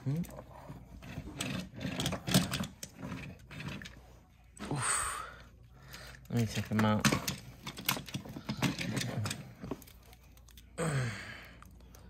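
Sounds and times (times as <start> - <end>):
plastic toys clicking and rattling: 0.0 - 4.2, 5.8 - 10.8.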